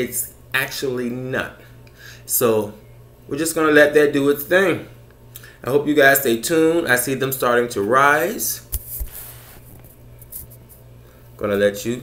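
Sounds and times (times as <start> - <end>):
faint hiss: 8.8 - 9.7.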